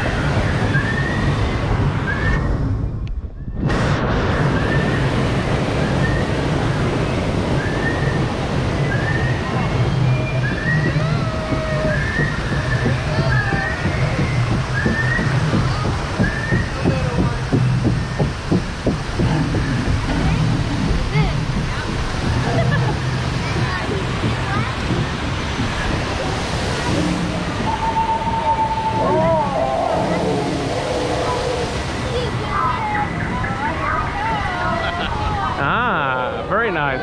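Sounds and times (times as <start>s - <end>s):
water splashing against raft: 0.0s - 2.8s, 3.6s - 36.0s
rushing water rumble: 0.0s - 37.0s.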